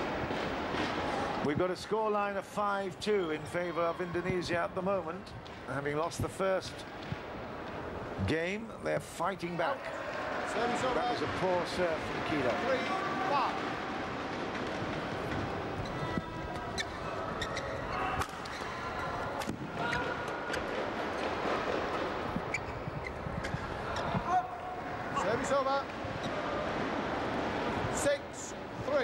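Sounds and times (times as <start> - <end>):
crowd murmur in large hall: 0.0 - 29.0.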